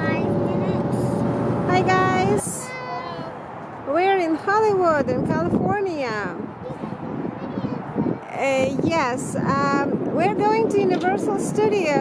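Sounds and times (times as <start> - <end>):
car driving on a freeway: 0.0 - 2.4.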